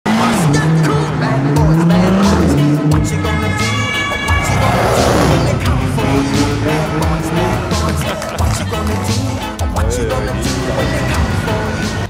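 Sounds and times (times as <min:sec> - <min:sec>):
car engine revving: 0:00.1 - 0:07.9
music playing: 0:00.1 - 0:12.0.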